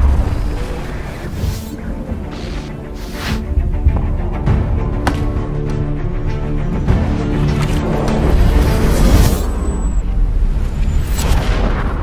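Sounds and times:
dramatic intro music: 0.0s - 12.0s.

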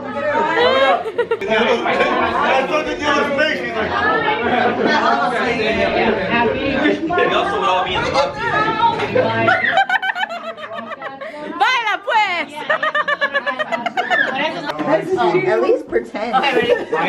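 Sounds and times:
people laughing: 0.0s - 15.0s, 16.3s - 17.0s.

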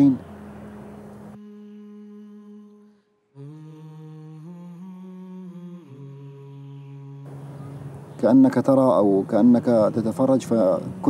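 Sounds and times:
slow hummed melody: 0.0s - 9.0s.

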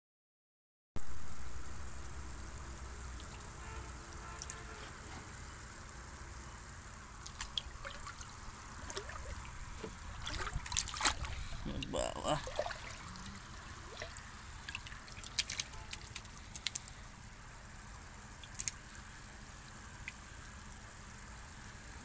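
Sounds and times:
pond water trickling and splashing: 1.0s - 22.0s.

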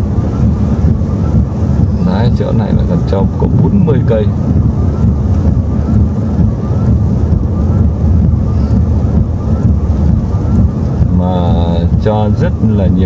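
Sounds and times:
road and engine rumble: 0.0s - 13.0s.

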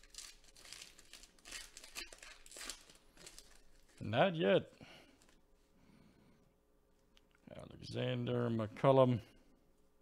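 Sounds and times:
plastic wrapper tearing and crinkling: 0.0s - 4.1s.

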